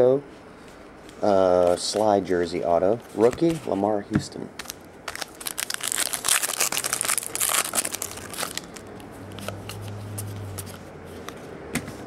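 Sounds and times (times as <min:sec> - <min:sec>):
wrapper tearing and crinkling: 0:04.6 - 0:10.0.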